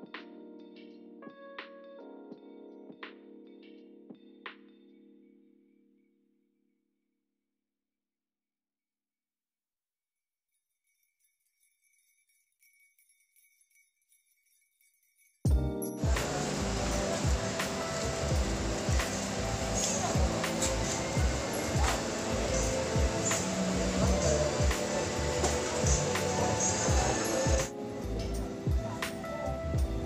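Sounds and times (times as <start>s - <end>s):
background music with steady beat: 15.5s - 30.0s.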